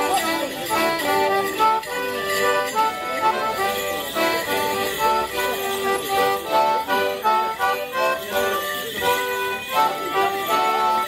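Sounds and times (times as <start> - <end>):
leg bells jingling: 0.0 - 11.0.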